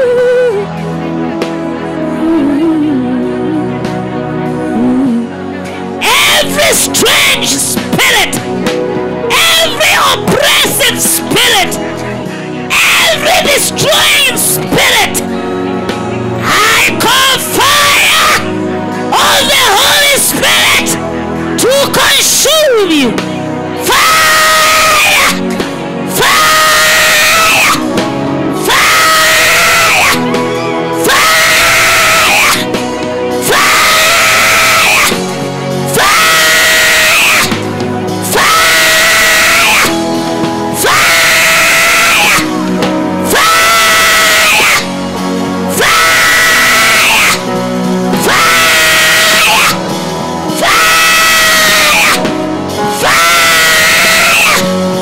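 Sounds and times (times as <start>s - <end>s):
woman screaming: 0.0s - 0.6s, 16.5s - 18.5s, 23.8s - 25.4s, 26.2s - 27.8s, 28.6s - 32.7s, 33.5s - 35.2s, 35.9s - 37.5s, 38.3s - 39.9s, 40.8s - 42.5s, 43.3s - 44.9s, 45.7s - 47.5s, 48.2s - 49.8s, 50.6s - 52.2s, 53.0s - 54.7s
background music: 0.0s - 55.0s.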